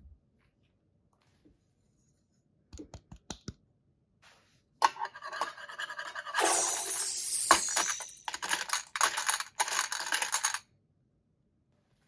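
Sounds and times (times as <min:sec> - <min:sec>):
plastic beads rattling in metal tin: 0:05.2 - 0:10.6.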